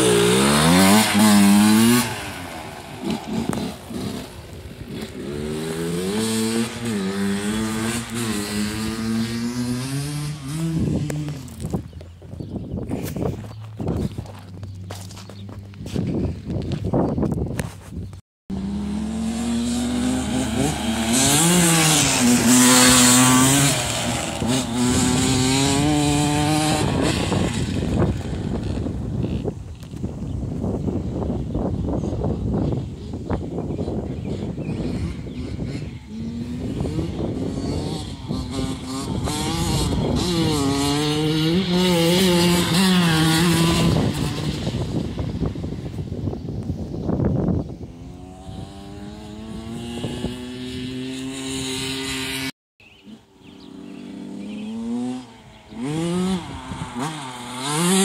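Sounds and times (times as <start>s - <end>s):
dirt bike engine revving past: 0.0s - 11.8s, 18.5s - 29.4s, 34.3s - 45.5s, 47.4s - 58.0s.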